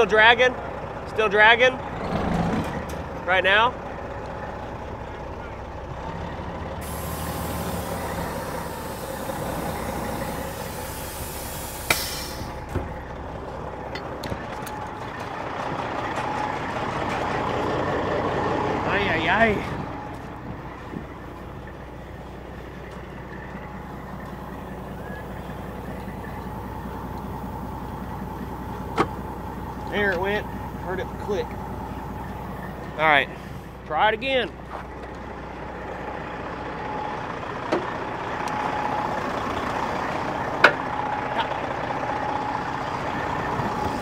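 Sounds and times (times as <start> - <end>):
diesel truck engine idling: 0.0 - 44.0
air brake hissing: 6.8 - 12.7.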